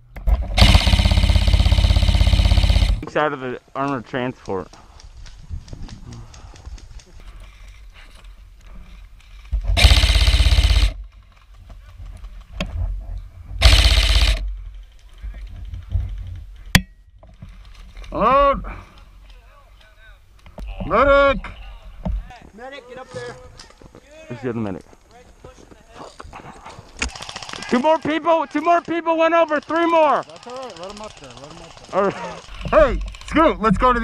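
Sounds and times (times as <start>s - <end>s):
airsoft gun full-auto bursts: 0.5s - 3.0s, 9.8s - 11.0s, 13.6s - 14.4s, 27.0s - 33.5s.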